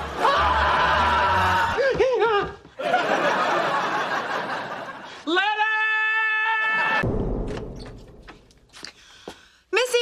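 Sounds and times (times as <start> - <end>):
man screaming in terror: 5.4 - 7.0.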